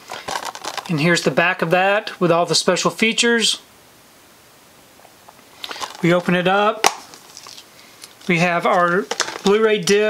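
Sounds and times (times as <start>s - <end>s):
plastic case rustling and clicking: 0.0s - 1.0s, 5.6s - 6.2s, 6.8s - 10.0s.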